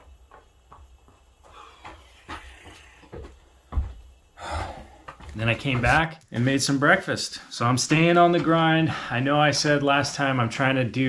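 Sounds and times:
running footsteps on gravel: 0.0s - 4.2s, 5.0s - 6.1s.

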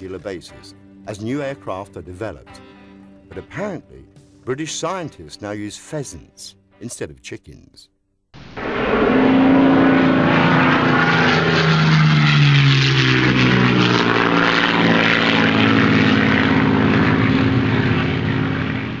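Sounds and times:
propeller aircraft engine: 8.4s - 19.0s.

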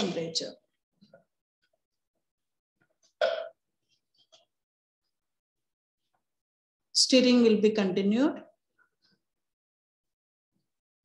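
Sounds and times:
person clearing throat: 3.2s - 3.6s.

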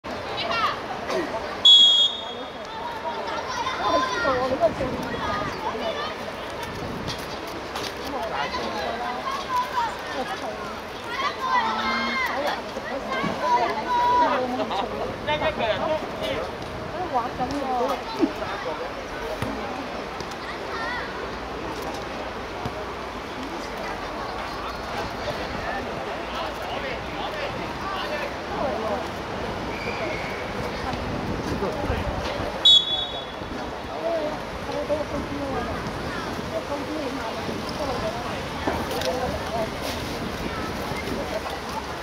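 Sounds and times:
referee's whistle blast: 1.6s - 2.5s, 32.6s - 33.4s
young players calling out: 8.4s - 14.6s.

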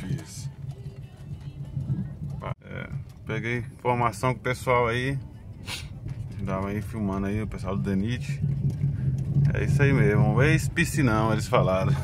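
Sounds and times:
car engine and tyre drone: 0.0s - 12.0s.

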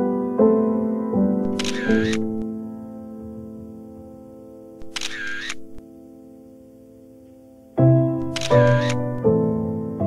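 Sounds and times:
background music with held tones: 0.0s - 10.0s
camera shutter: 1.4s - 2.4s, 4.8s - 5.8s, 8.2s - 9.2s.

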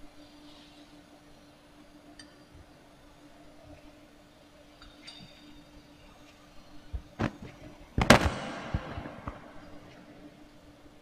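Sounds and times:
faint steady hum: 0.0s - 11.0s
loud sharp thud: 8.0s - 9.8s.

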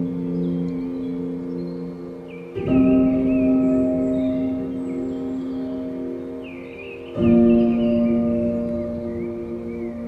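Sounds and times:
faint high wavering tones: 0.0s - 10.0s.

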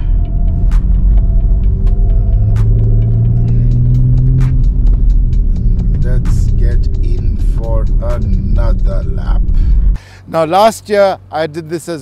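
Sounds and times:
music: 0.0s - 10.0s
car engine rumbling: 0.0s - 12.0s.

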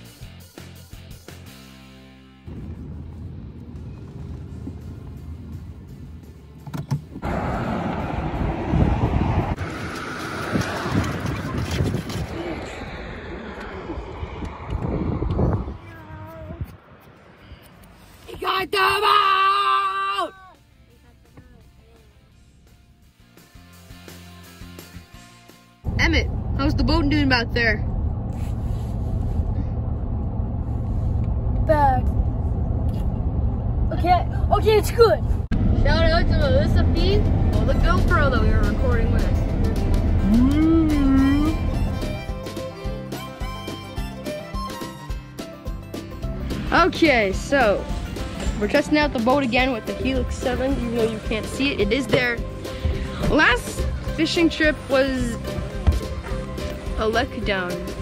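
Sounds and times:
music: 0.0s - 2.5s, 20.1s - 26.2s, 36.4s - 58.0s
road and engine noise in a car: 2.5s - 23.6s, 25.8s - 58.0s
vehicle rumble inside cabin: 2.6s - 18.0s, 25.9s - 44.8s.

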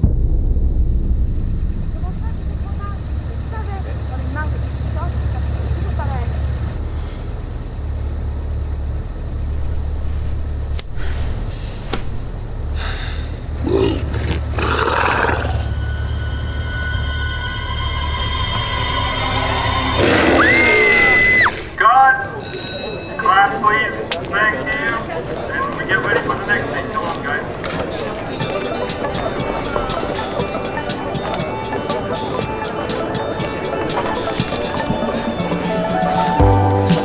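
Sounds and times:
low steady rumble: 0.0s - 13.6s
people talking: 1.9s - 6.6s, 21.8s - 35.9s
loud high scream: 15.1s - 21.8s.

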